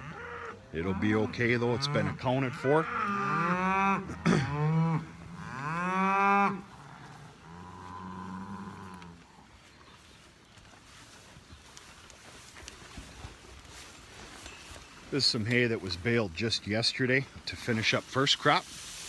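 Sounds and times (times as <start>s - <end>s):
cattle mooing: 0.0s - 9.3s.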